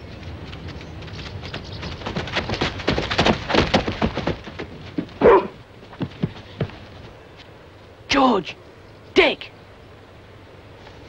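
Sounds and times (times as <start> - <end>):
dog barking: 5.2 - 5.6.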